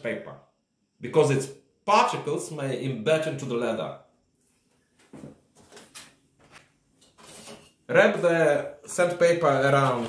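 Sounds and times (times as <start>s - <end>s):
soft knocks and scuffs of handling: 4.7s - 7.7s.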